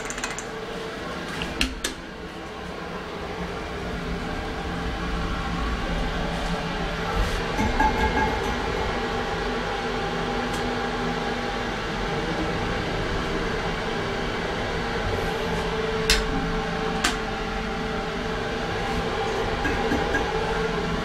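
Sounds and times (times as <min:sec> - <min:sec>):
elevator car humming: 0:00.0 - 0:21.0.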